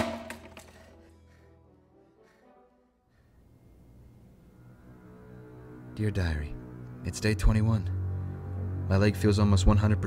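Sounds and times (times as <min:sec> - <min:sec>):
dark film score: 0:00.0 - 0:10.0.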